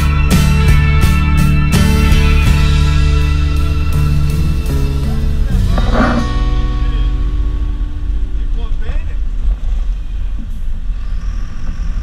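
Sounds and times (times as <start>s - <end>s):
bus engine rumble: 2.4s - 12.0s.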